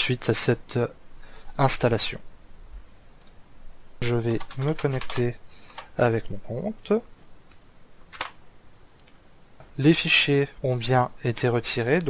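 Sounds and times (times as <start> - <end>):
computer mouse clicks: 3.1 - 3.4, 9.0 - 9.2.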